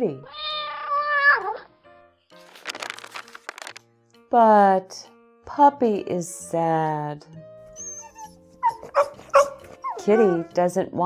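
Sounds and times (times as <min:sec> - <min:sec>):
puppy whimpering: 0:07.7 - 0:10.6.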